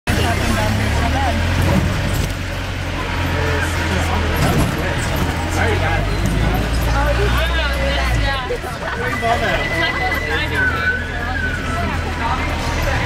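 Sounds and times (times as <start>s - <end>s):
street voices: 0.0s - 13.0s
car engine running: 0.1s - 13.0s.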